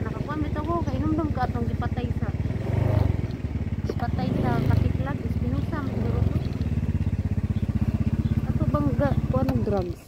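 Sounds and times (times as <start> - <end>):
small motorcycle engine running: 0.0 - 10.0.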